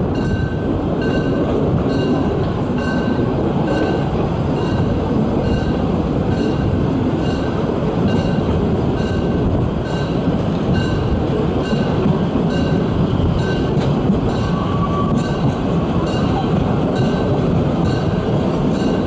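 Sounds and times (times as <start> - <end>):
steam train running: 0.0 - 19.0
wind buffeting microphone: 0.0 - 19.0.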